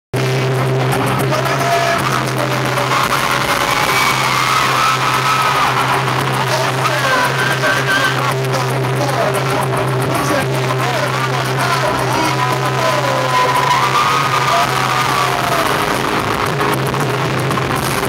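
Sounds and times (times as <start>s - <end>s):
concert intro music with drone: 0.2s - 18.0s
crowd screaming: 0.6s - 18.0s.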